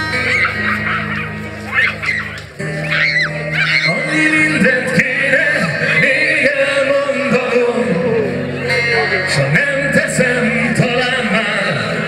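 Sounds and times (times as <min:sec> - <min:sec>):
crowd whooping: 0:00.0 - 0:04.8
live band playing chords: 0:00.0 - 0:12.0.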